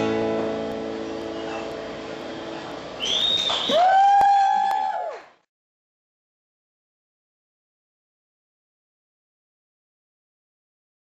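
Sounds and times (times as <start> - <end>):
audience member shouting woo: 3.0 - 5.3
sharp claps: 3.3 - 5.4.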